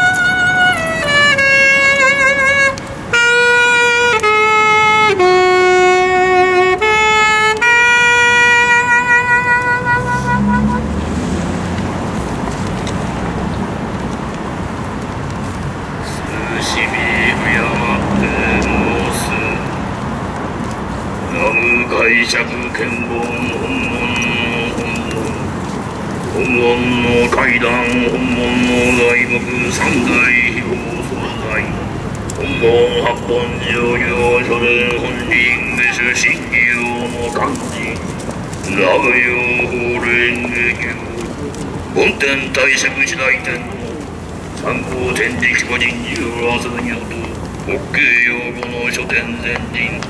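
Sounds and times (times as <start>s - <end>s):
saxophone note with vibrato: 0.0s - 11.0s
street traffic noise: 0.0s - 50.0s
man chanting a prayer: 16.0s - 19.9s, 21.3s - 50.0s.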